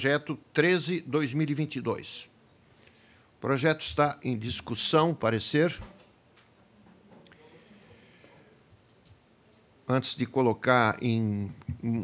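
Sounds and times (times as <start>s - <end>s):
man speaking: 0.0s - 2.4s, 3.4s - 5.9s, 9.8s - 12.0s.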